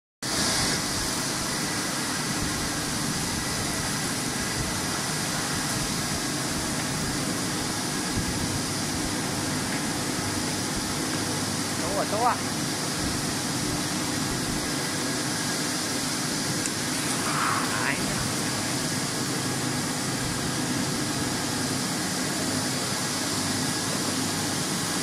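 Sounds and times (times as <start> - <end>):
washing machine running: 0.2 - 25.0.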